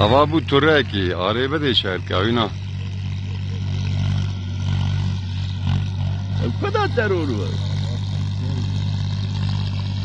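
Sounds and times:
engine idling: 0.0s - 10.0s
man's voice: 6.4s - 7.6s.

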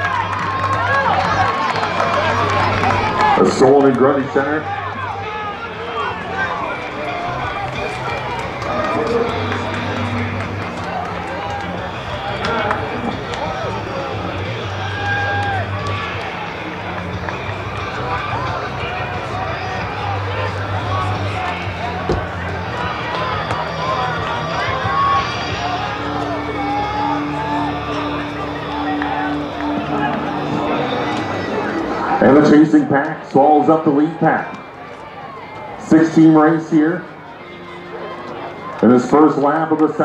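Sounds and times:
crowd talking and calling out: 0.0s - 40.0s.

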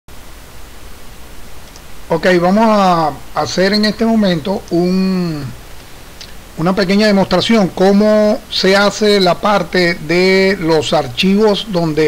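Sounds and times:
faint low hum: 0.1s - 12.0s
microphone hiss: 0.1s - 12.0s.

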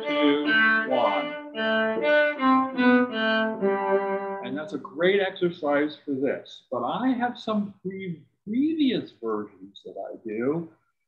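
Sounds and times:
cello bowed notes: 0.0s - 5.0s.

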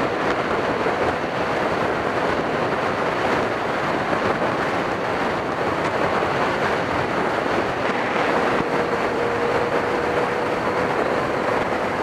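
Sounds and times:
motorcycle engine hum: 0.0s - 12.0s
wind rush: 0.0s - 12.0s.

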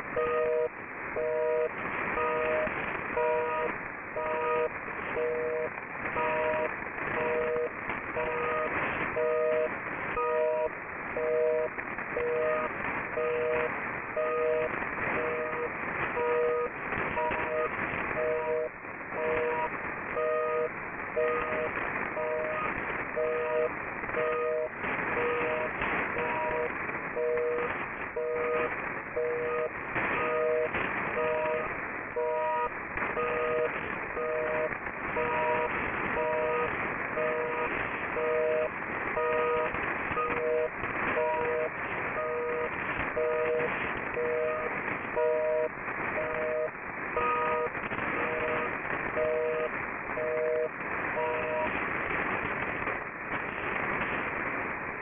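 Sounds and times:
pulsed low radio tones: 0.0s - 55.0s
radio static hiss: 0.0s - 55.0s.

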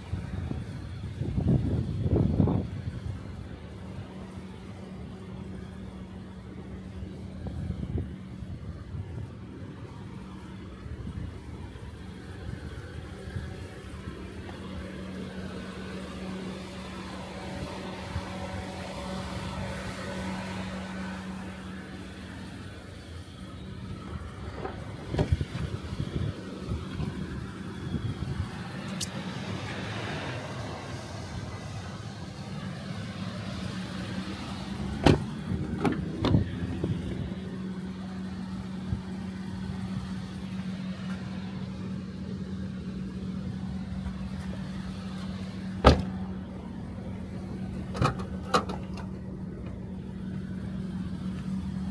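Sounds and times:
car door latch clicking: 45.8s - 46.1s.

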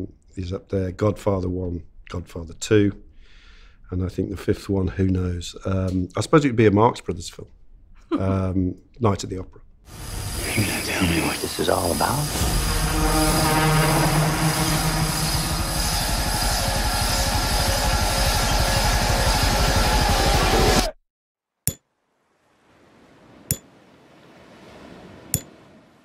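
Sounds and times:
faint hum: 9.9s - 19.5s
dense orchestral score with effects: 10.0s - 20.9s
sharp hits: 12.0s - 18.4s.

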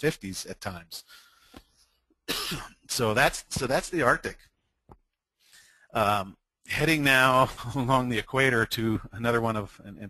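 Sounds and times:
man speaking: 0.0s - 1.2s, 2.8s - 4.5s, 5.9s - 10.0s
man coughing: 2.2s - 2.9s.

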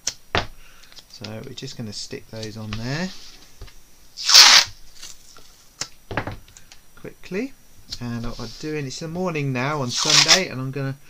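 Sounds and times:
masking tape ripped off roll: 4.2s - 5.2s, 9.9s - 10.5s.

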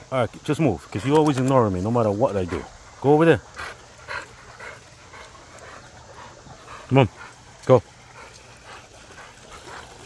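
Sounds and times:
dog panting: 2.0s - 10.0s.

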